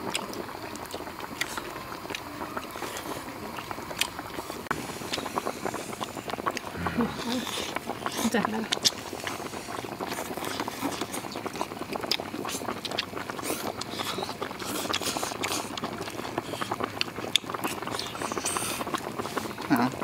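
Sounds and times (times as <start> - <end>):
noodles being slurped: 0.0 - 20.0.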